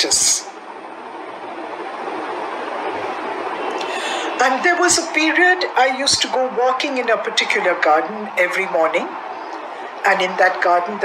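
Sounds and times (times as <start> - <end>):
steady rushing noise: 0.0 - 11.0.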